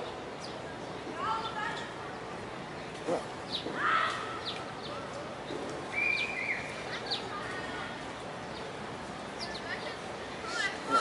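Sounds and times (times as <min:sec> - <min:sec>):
outdoor background hiss: 0:00.0 - 0:11.0
small birds chirping: 0:00.0 - 0:11.0.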